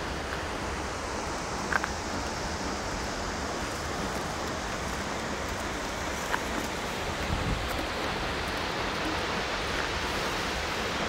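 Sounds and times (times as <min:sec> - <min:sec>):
distant waterfall rushing: 0:00.0 - 0:11.0
wind rumbling on microphone: 0:00.0 - 0:11.0.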